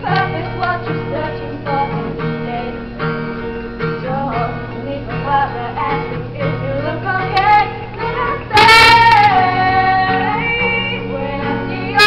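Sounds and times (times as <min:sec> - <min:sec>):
women singing: 0:00.0 - 0:03.0, 0:04.0 - 0:12.0
strummed acoustic guitar: 0:00.0 - 0:12.0.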